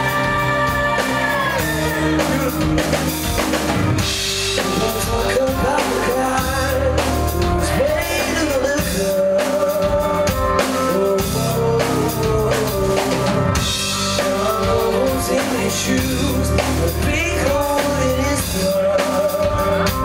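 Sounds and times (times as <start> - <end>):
man singing: 0.0 - 3.0, 4.0 - 20.0
pop-rock band playing: 0.0 - 20.0.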